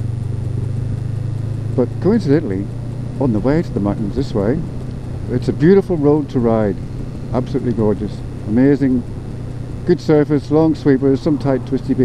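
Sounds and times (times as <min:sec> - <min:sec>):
motorcycle engine humming: 0:00.0 - 0:12.0.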